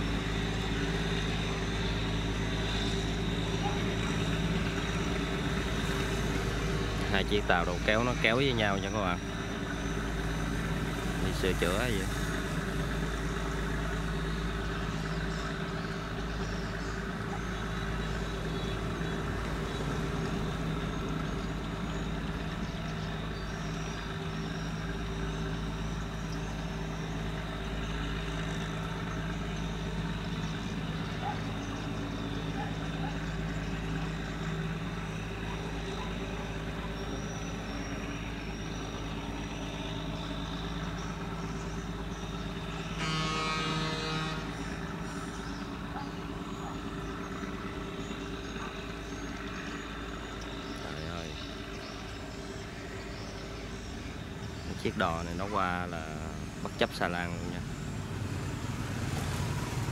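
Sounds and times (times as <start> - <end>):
boat diesel engine running: 0.0 - 59.9
loud horn blast: 42.8 - 44.9.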